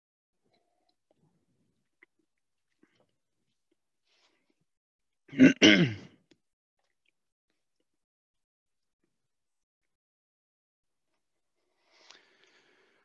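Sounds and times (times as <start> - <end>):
man clearing his throat: 5.3 - 6.2.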